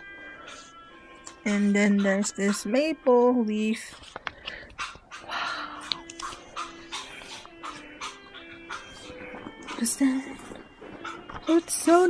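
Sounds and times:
faint background music: 0.0 - 12.0
banknotes crinkling: 3.8 - 4.7.

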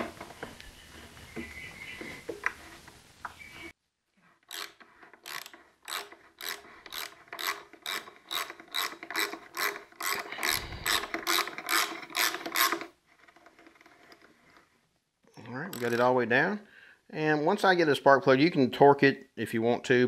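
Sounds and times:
ratchet wrench clicking: 4.5 - 12.9.

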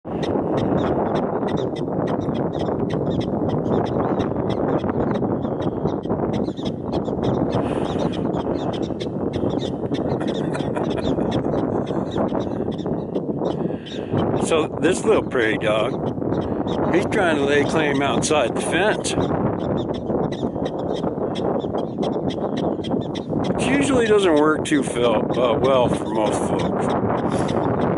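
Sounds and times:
steady rushing noise: 0.0 - 27.9
wind noise on microphone: 0.0 - 27.9
prairie dog barking: 0.2 - 14.3.

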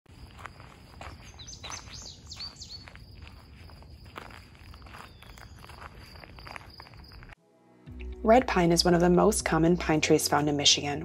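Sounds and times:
footsteps on forest trail: 0.1 - 7.4
high bird chirps: 1.0 - 7.4.

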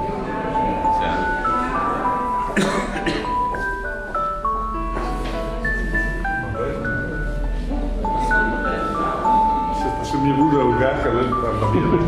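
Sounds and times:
bell-like chiming melody: 0.0 - 2.6, 3.2 - 12.0.

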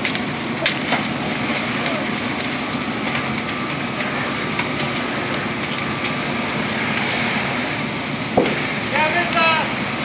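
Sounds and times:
fire crackling and popping: 0.0 - 10.0
fire rushing: 0.0 - 10.0.

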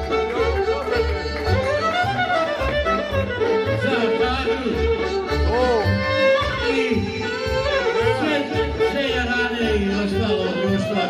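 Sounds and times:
keyboard: 0.0 - 11.0
violin: 0.0 - 11.0.

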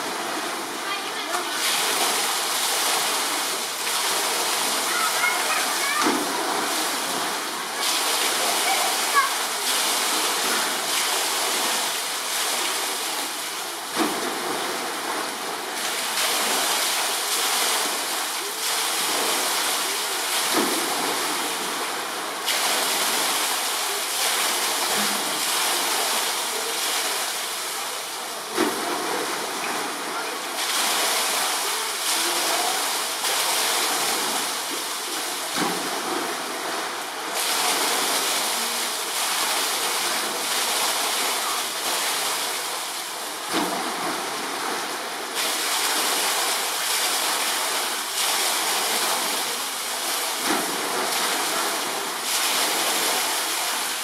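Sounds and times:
running water rushing: 0.0 - 54.0.

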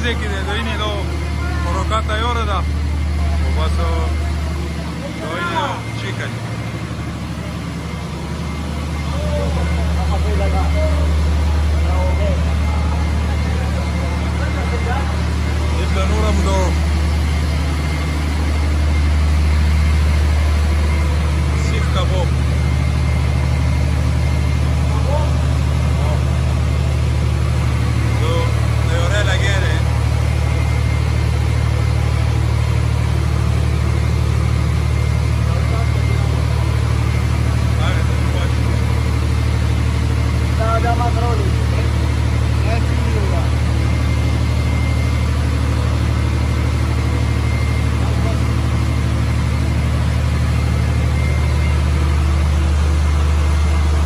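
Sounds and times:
engine idling drone: 0.0 - 54.0.

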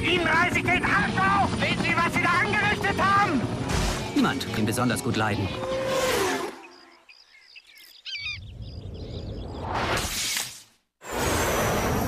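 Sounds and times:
birds chirping: 0.0 - 9.8.

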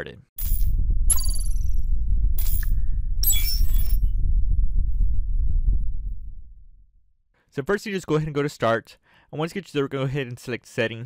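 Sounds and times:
deep bass rumble: 3.9 - 7.1.

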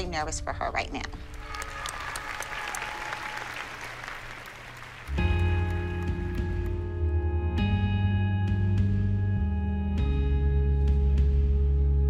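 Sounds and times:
audience applauding: 1.2 - 6.8
slow music with held chords: 5.0 - 12.0.

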